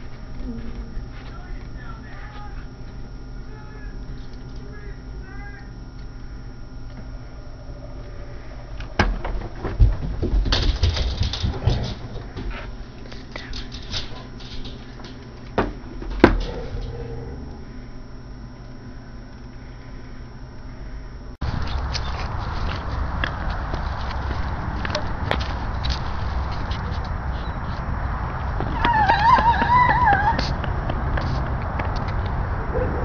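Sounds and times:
clatter of person leaping up: 0:09.0 - 0:12.2
running footsteps on hard floor: 0:28.7 - 0:31.6.

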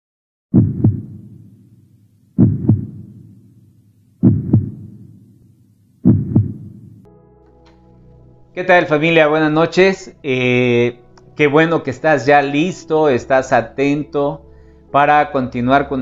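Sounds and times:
deep heartbeat thumps: 0:00.5 - 0:01.6, 0:02.4 - 0:03.5, 0:04.2 - 0:05.3, 0:06.0 - 0:07.1
held music chord: 0:07.0 - 0:16.0.

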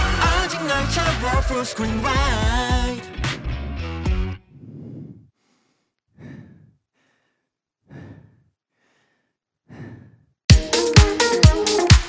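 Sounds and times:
song beat: 0:00.0 - 0:03.4, 0:10.5 - 0:12.0
man breathing heavily into microphone: 0:04.5 - 0:10.4.

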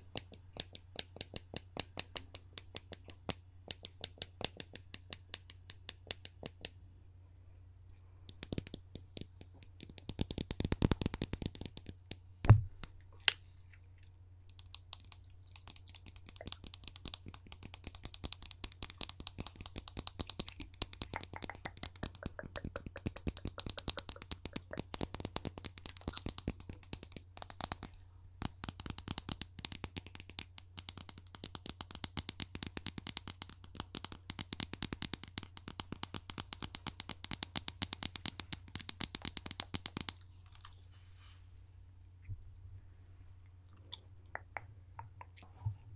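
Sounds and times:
fingernail tapping on hard object: 0:00.0 - 0:06.8, 0:08.3 - 0:12.6, 0:14.6 - 0:40.2
low steady hum: 0:00.0 - 0:45.9.

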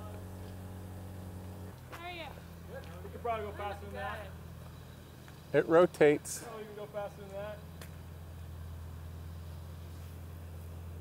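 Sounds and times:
low machine hum: 0:00.0 - 0:11.0
man speaking: 0:05.6 - 0:07.6.

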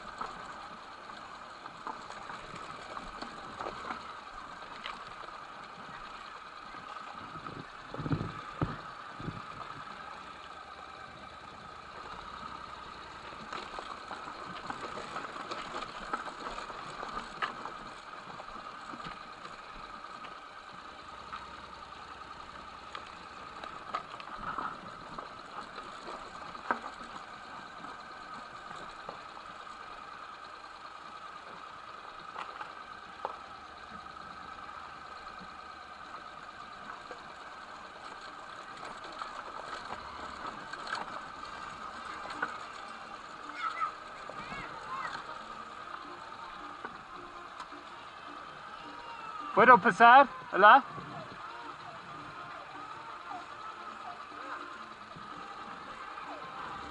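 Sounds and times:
clicks and knocks on rough ground: 0:00.0 - 0:34.6
motorcycle engine running: 0:00.0 - 0:56.9.

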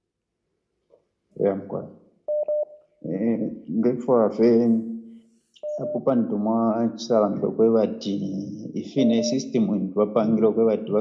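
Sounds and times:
man speaking: 0:01.4 - 0:01.9, 0:03.0 - 0:04.9, 0:05.6 - 0:11.0
short electronic beeps: 0:05.6 - 0:06.1, 0:09.0 - 0:09.5.

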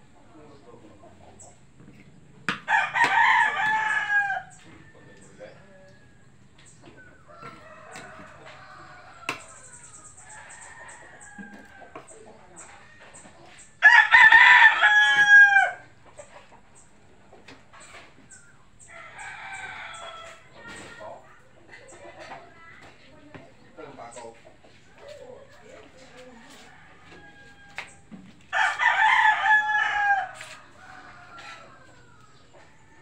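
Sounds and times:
rooster crowing: 0:02.7 - 0:06.0, 0:07.0 - 0:12.1, 0:13.8 - 0:15.9, 0:18.9 - 0:20.5, 0:26.2 - 0:33.0
chicken clucking: 0:06.6 - 0:13.8, 0:15.2 - 0:27.9, 0:29.9 - 0:33.0.

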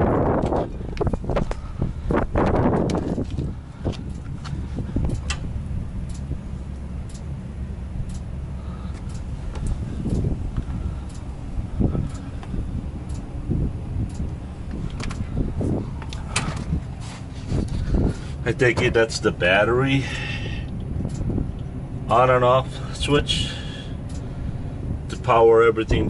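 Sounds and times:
diesel truck idling: 0:00.0 - 0:26.0
light clicks: 0:02.7 - 0:07.3.

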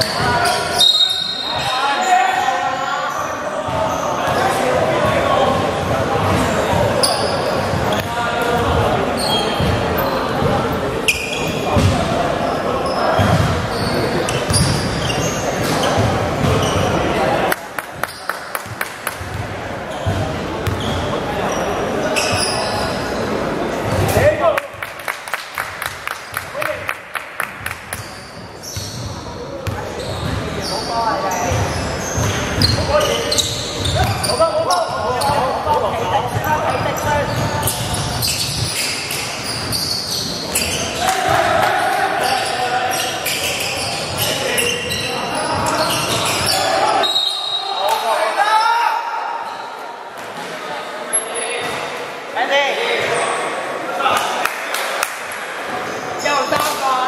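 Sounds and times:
players' voices: 0:00.0 - 0:57.0.

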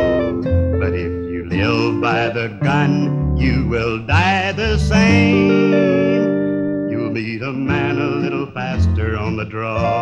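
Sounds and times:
steel guitar: 0:00.0 - 0:10.0
person singing: 0:00.8 - 0:10.0.

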